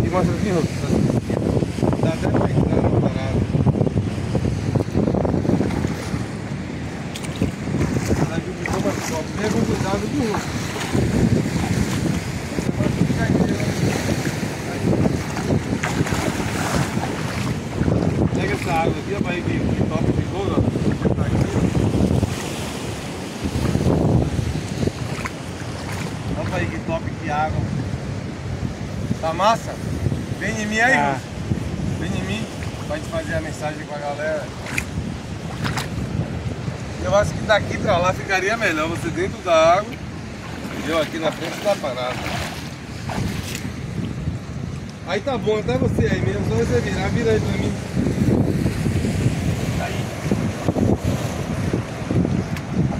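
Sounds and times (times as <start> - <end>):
sea surf on rocks: 0.0 - 52.9
wind buffeting microphone: 0.0 - 52.9.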